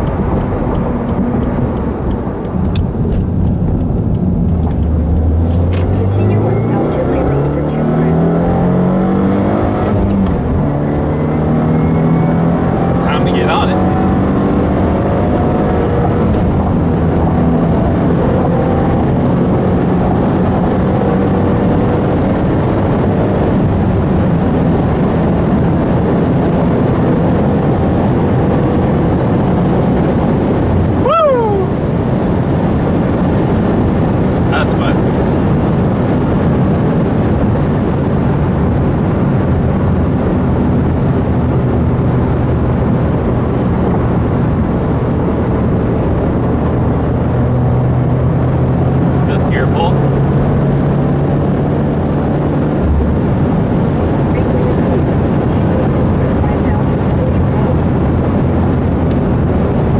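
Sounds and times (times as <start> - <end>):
car engine accelerating: 0.0 - 59.9
road and tyre noise: 0.0 - 59.9.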